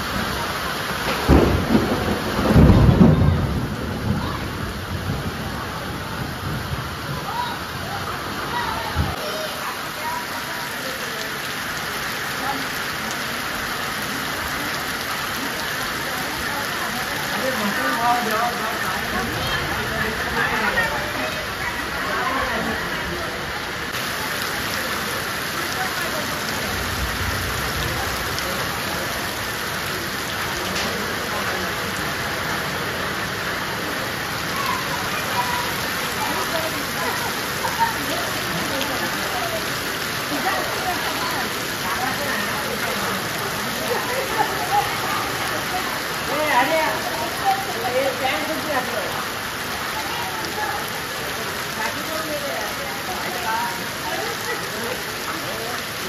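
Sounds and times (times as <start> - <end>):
heavy rain on muddy ground: 0.0 - 56.0.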